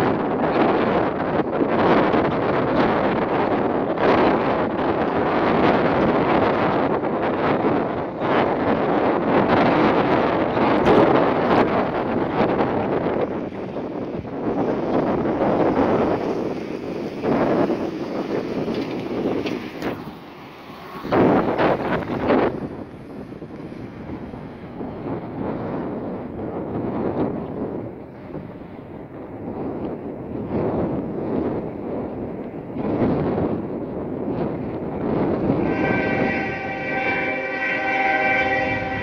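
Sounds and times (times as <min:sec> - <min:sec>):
wind gusts on microphone: 0:00.0 - 0:39.0.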